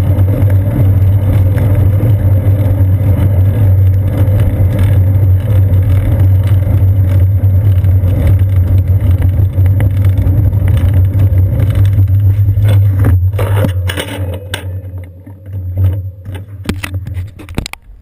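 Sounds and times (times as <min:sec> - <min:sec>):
road vibration rumble: 0:00.0 - 0:18.0.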